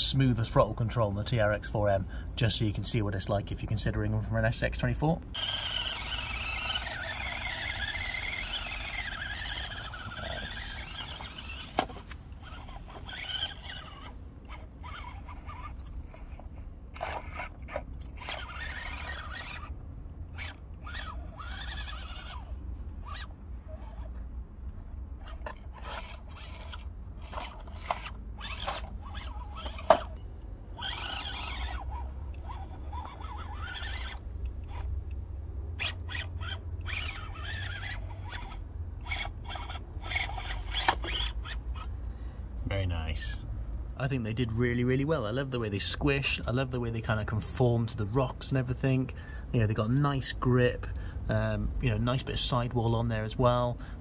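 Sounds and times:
small electric motor whining: 5.3s - 42.4s.

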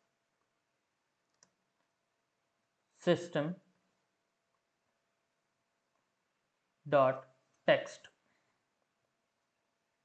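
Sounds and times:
faint click: 1.3s - 1.6s.

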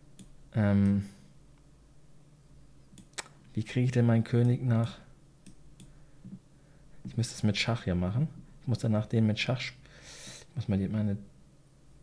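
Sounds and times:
computer mouse clicks: 2.9s - 3.4s, 4.4s - 6.0s.

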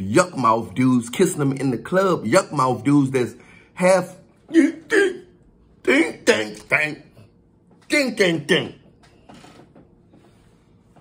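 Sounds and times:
man speaking: 0.0s - 8.9s.

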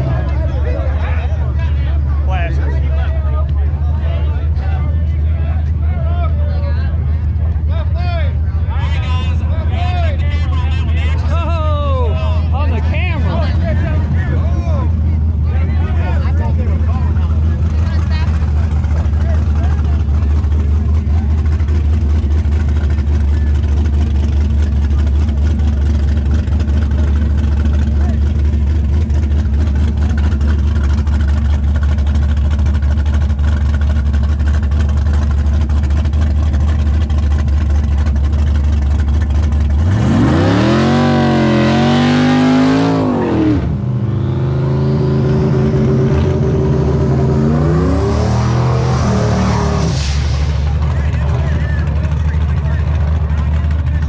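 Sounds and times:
car engine idling and revving: 0.0s - 54.0s
another engine idling: 12.2s - 54.0s.

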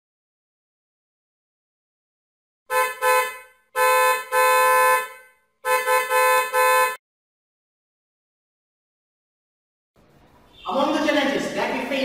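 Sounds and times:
car horn honking: 2.7s - 7.0s.

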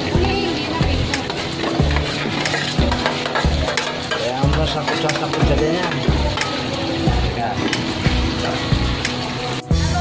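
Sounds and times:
meat sizzling in pot: 0.0s - 10.0s.

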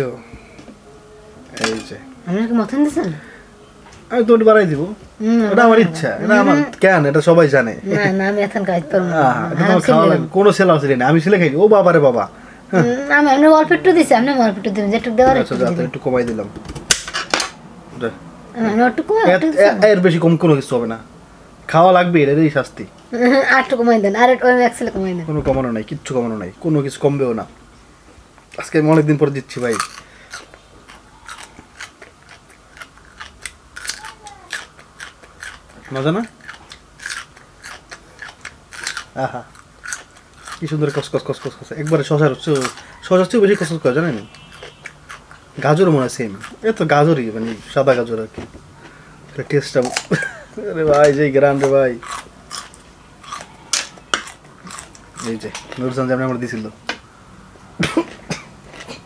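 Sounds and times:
person chewing crisp radish: 29.6s - 48.1s, 51.5s - 56.0s
person coughing: 57.8s - 59.0s.

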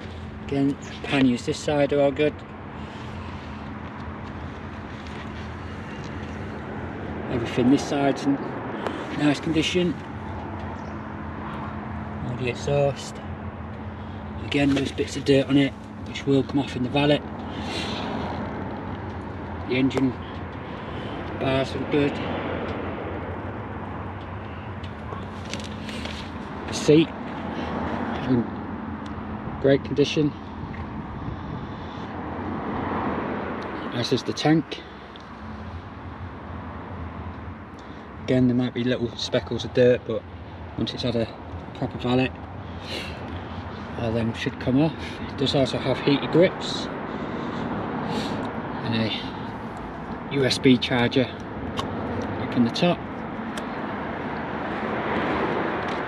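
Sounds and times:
steady engine drone: 0.0s - 56.0s.

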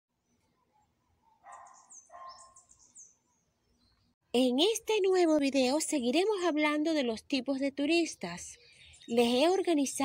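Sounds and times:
faint high bird-like chirps: 0.2s - 4.2s, 8.2s - 9.8s.

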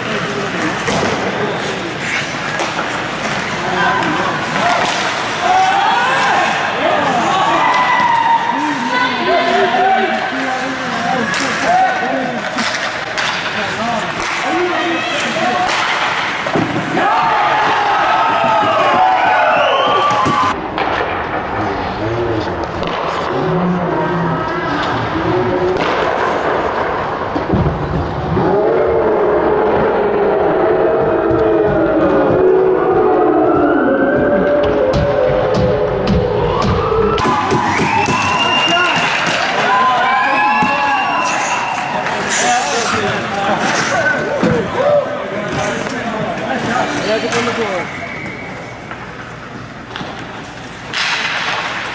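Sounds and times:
voices shouting and cheering: 0.0s - 20.6s, 28.2s - 49.0s.

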